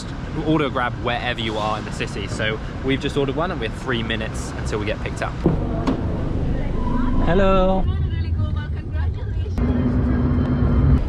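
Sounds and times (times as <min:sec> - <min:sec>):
car engine drone: 0:00.0 - 0:11.0.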